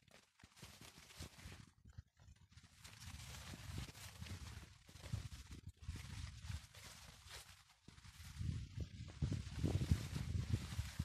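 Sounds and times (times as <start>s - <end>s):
footsteps through plants: 0.0s - 11.0s
leaves brushing: 0.0s - 11.0s.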